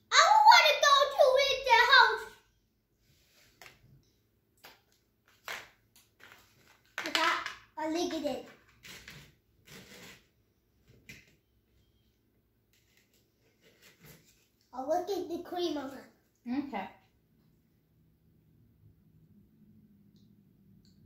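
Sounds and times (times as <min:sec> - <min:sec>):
small taps and rustles: 0:03.6 - 0:07.6.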